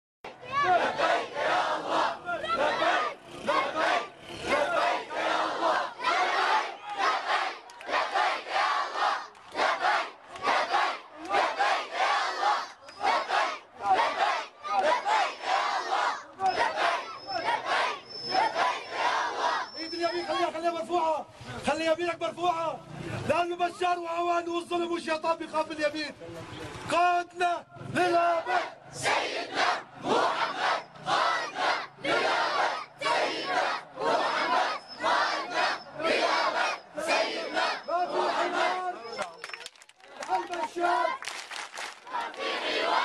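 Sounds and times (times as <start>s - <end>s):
crowd chanting slogans: 0.3s - 20.8s, 27.8s - 39.3s, 40.0s - 43.0s.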